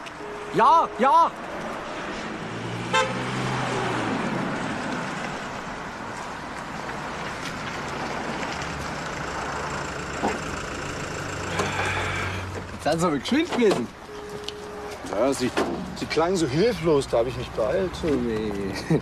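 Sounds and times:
car engine and tyre noise: 0:00.0 - 0:19.0.

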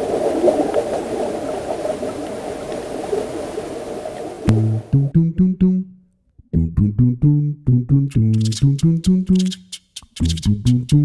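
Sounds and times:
underwater bubbling and gurgling: 0:00.0 - 0:04.6.

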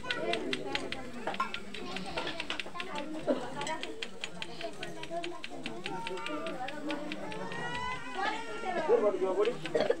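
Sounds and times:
quick even ticking: 0:00.0 - 0:07.8.

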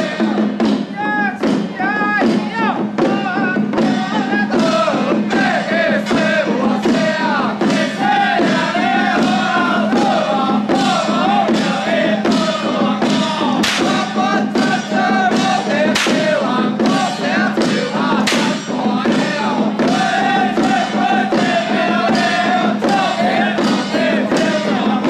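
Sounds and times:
hand drums beaten with sticks: 0:00.0 - 0:25.0
men chanting in unison: 0:00.0 - 0:25.0.

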